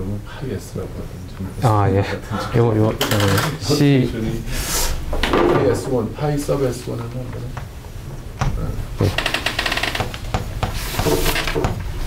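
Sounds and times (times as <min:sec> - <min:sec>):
chalk scratching on a blackboard: 0:10.6 - 0:11.5.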